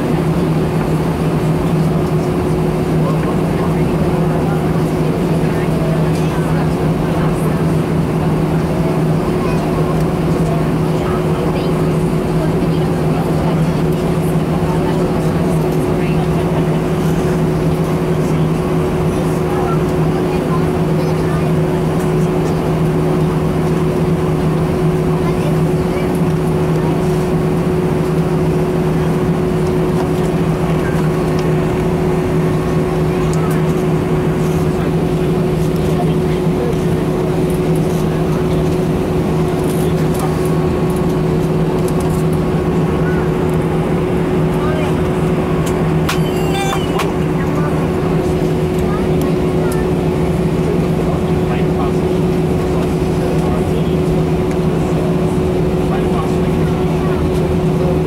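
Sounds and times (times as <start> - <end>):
airplane cabin engine drone: 0.0 - 58.0.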